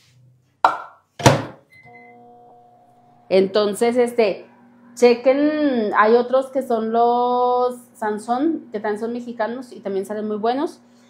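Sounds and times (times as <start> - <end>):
microwave electric hum: 1.2 - 11.0.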